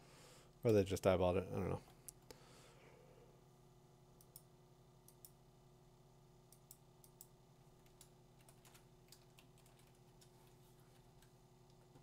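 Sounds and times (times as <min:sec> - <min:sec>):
low steady hum: 0:00.0 - 0:12.0
keyboard and mouse clicking: 0:06.6 - 0:10.3.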